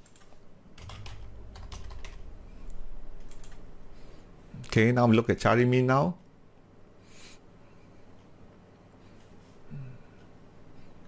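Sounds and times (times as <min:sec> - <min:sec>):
typing on keyboard: 0:00.0 - 0:02.2, 0:03.2 - 0:03.6.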